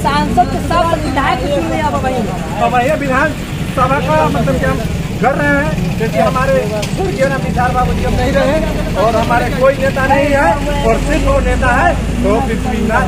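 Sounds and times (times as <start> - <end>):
men talking into a microphone: 0.0 - 13.0
steady low rumble: 1.2 - 13.0.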